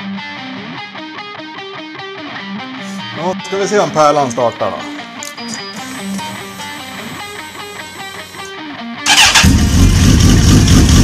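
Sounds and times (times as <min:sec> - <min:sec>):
guitar music: 0:00.0 - 0:09.6
motorcycle engine rumbling: 0:09.1 - 0:11.0.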